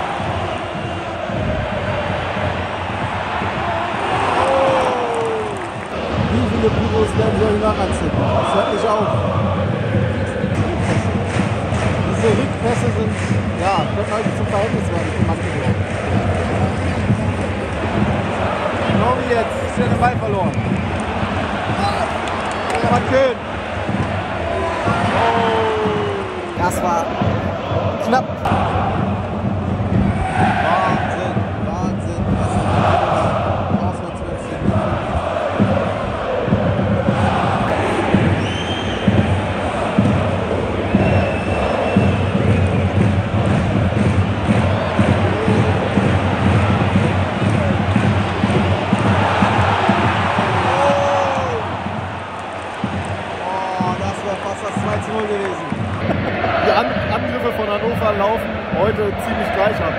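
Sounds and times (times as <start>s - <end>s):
stadium crowd chanting and singing: 0.0s - 59.9s.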